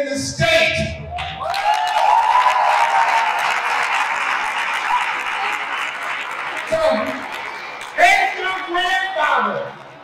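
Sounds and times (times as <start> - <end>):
crowd applauding and cheering: 1.1 - 9.0.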